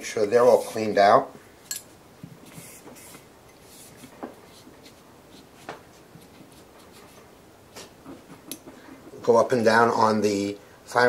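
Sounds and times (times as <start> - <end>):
cloth rubbing on metal: 0.4 - 1.1.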